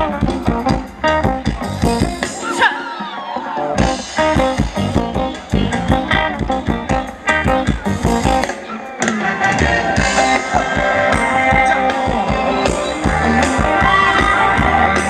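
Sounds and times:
live band playing dance music: 0:00.0 - 0:15.0.

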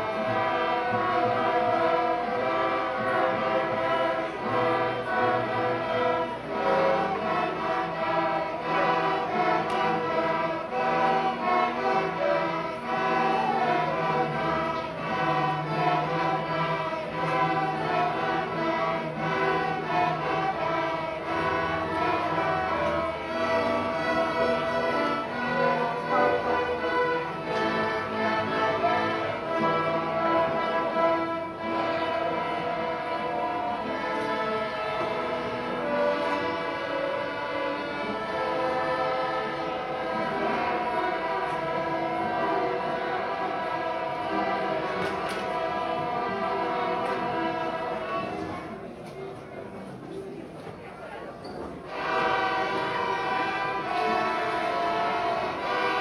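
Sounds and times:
string orchestra playing: 0:00.0 - 0:56.0.

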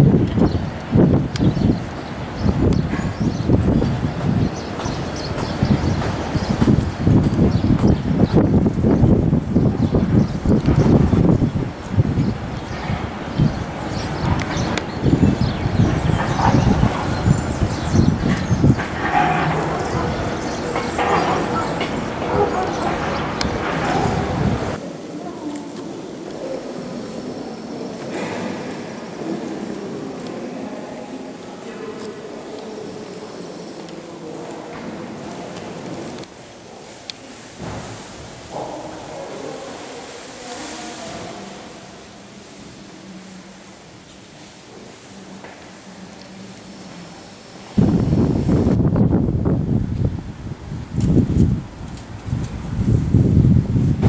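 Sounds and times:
wind buffeting microphone: 0:00.0 - 0:43.2, 0:47.6 - 0:54.0
low murmur in church: 0:00.0 - 0:54.0.

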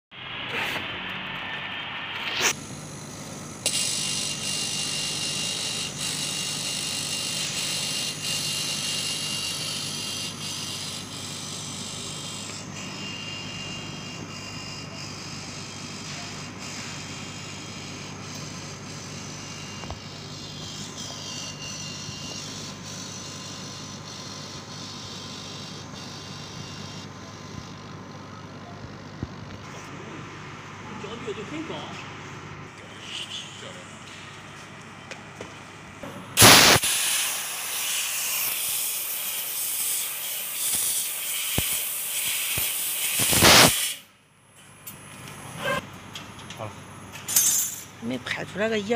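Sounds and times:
laser cutter machine hum: 0:00.2 - 0:43.8
airy hiss: 0:36.4 - 0:38.2.

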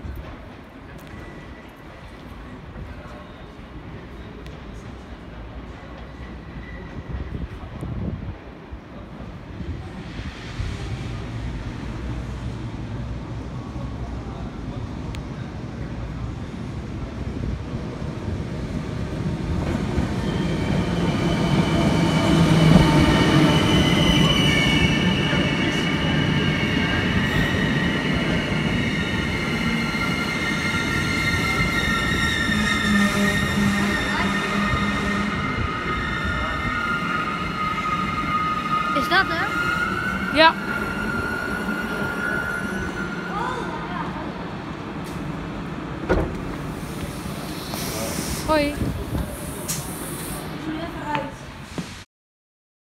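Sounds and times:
train rumbling: 0:00.0 - 0:52.0
train hissing: 0:46.6 - 0:52.0.

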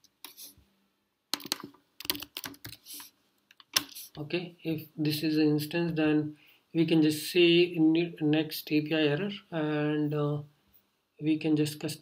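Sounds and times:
computer keyboard typing: 0:01.4 - 0:04.0.

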